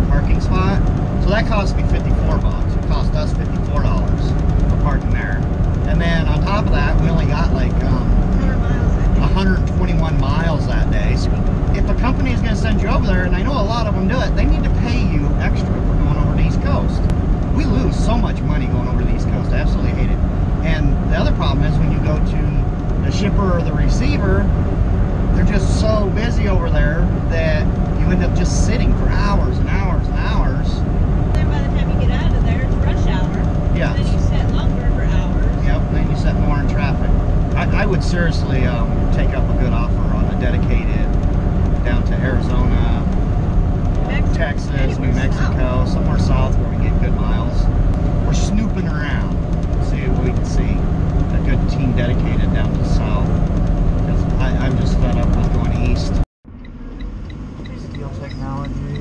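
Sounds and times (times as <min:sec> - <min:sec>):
voices: 0:00.0 - 0:56.3, 0:57.0 - 0:59.0
steady hum tones: 0:00.0 - 0:59.0
truck engine and road rumble: 0:00.0 - 0:59.0.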